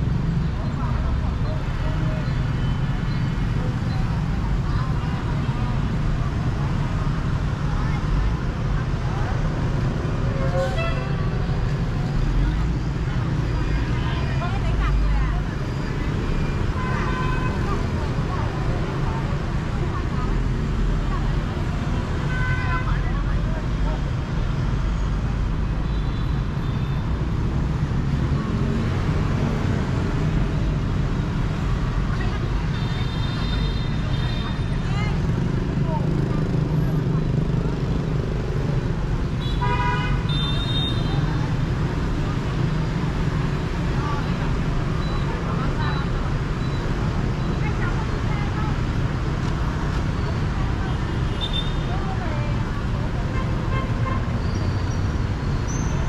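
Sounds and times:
traffic engine rumble: 0:00.0 - 0:56.0.

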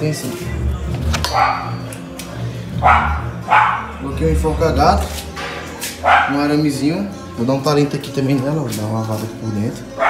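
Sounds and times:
dog barking: 0:01.3 - 0:01.8, 0:02.8 - 0:04.0, 0:06.0 - 0:06.4.

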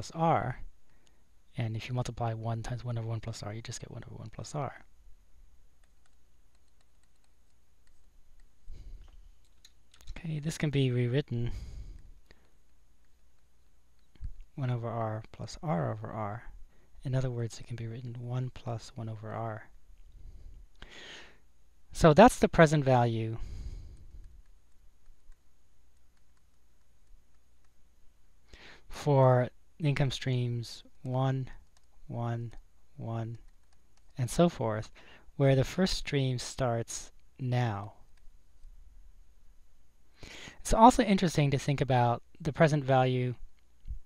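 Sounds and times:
low steady hum: 0:00.0 - 0:44.0
stylus tapping on screen: 0:05.8 - 0:10.2.

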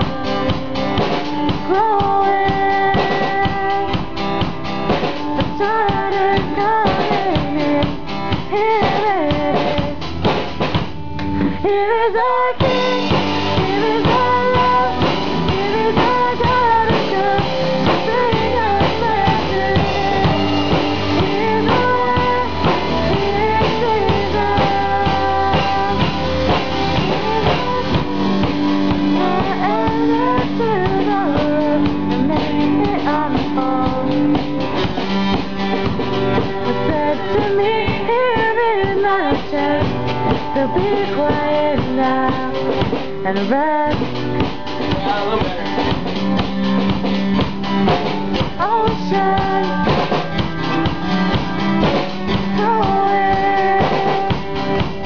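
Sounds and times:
drum kit beat: 0:00.0 - 0:55.0
guitar: 0:00.0 - 0:55.0.

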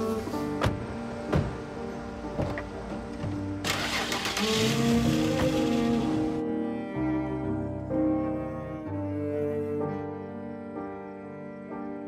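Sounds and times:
dramatic string music: 0:00.0 - 0:12.0
car doors shutting: 0:00.4 - 0:06.4
car engine starting and pulling away: 0:02.3 - 0:06.4.

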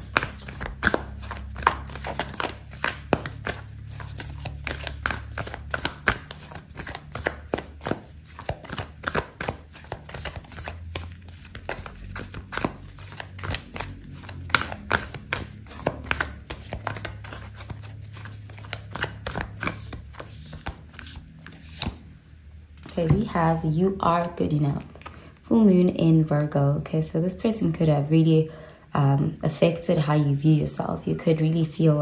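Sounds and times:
cards being shuffled: 0:00.0 - 0:22.0.

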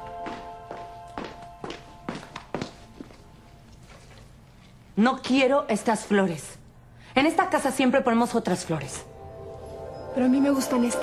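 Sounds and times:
soft background music: 0:00.0 - 0:04.3, 0:07.6 - 0:11.0
footsteps on hard floor: 0:00.0 - 0:04.4.

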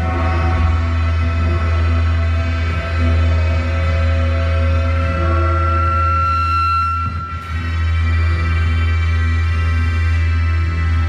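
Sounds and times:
electronic drone music: 0:00.0 - 0:11.0
high held tone: 0:00.0 - 0:11.0.

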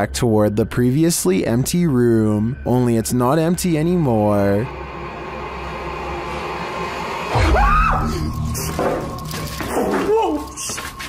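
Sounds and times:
low music drone: 0:00.0 - 0:11.0
person screaming: 0:07.3 - 0:08.3.

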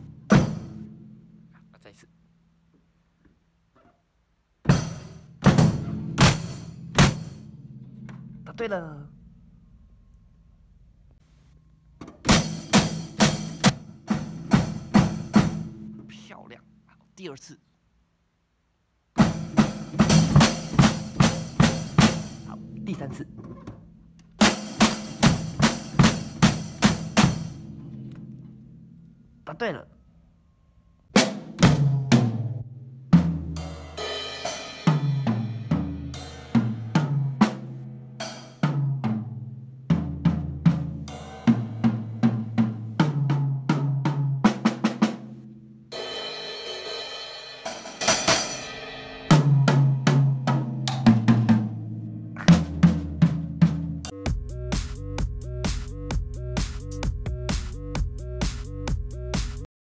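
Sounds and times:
snare tom and bass drum hits: 0:00.0 - 0:00.9, 0:04.7 - 0:07.5, 0:19.2 - 0:22.6, 0:52.4 - 0:59.7
drum kit strokes: 0:00.0 - 0:01.9, 0:04.7 - 0:08.8, 0:12.1 - 0:16.3, 0:19.2 - 0:28.9, 0:31.2 - 0:59.7
cymbal crashes: 0:45.9 - 0:49.7.

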